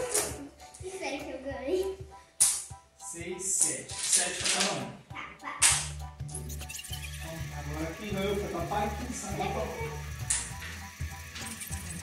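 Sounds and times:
background music with bass line: 4.8 - 12.0.

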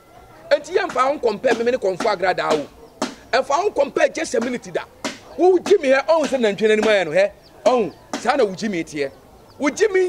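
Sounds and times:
man speaking animatedly: 0.5 - 10.0.

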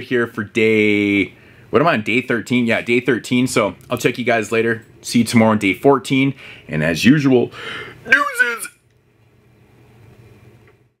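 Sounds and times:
low steady hum with hiss: 0.0 - 11.0.

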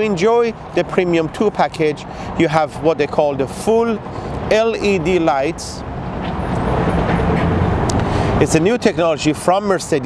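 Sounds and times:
motor traffic rumble: 0.0 - 10.0.

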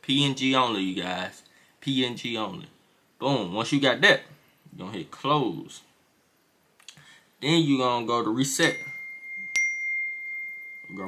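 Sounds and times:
thin high tone: 8.4 - 11.0
bell-like alert chime: 8.6 - 11.0.

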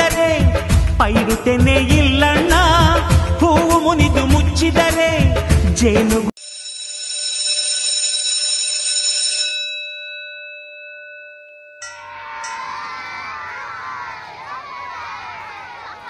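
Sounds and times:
electric bell ringing: 6.4 - 12.8
chatter of many voices: 13.2 - 16.0.

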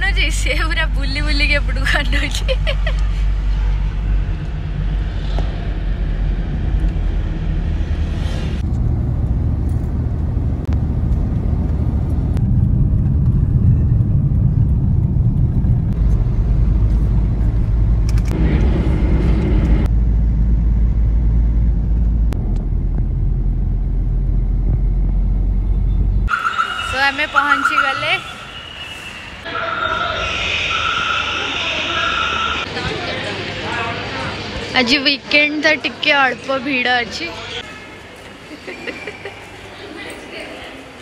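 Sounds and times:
car road and engine rumble: 0.0 - 32.7.

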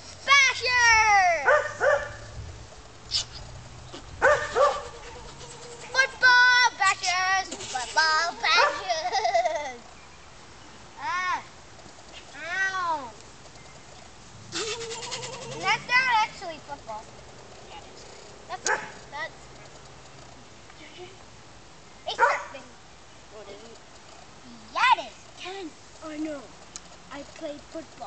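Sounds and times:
boy squealing: 7.0 - 9.0, 14.5 - 15.9.

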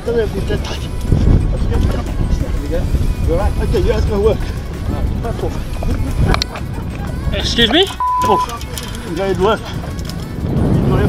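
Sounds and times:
wind: 0.0 - 11.0.

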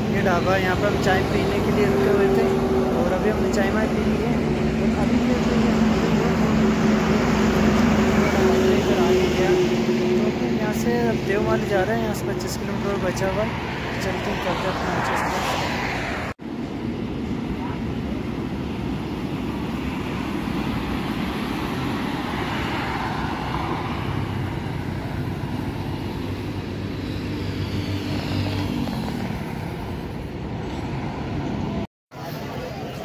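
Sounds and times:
highway traffic passing: 0.0 - 33.0.

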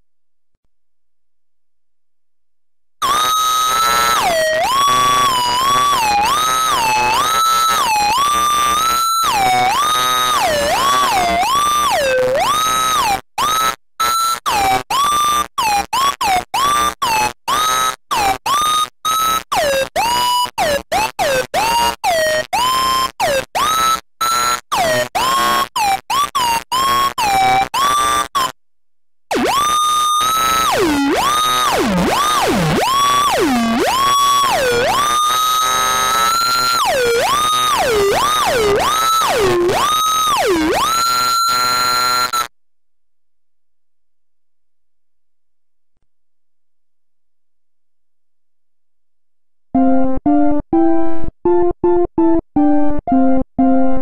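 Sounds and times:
theremin melody: 3.0 - 13.5, 29.3 - 42.5, 49.8 - 54.0.

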